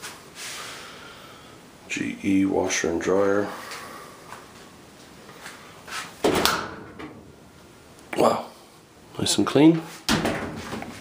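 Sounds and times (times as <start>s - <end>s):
person breathing in through nose: 0.4s - 1.6s.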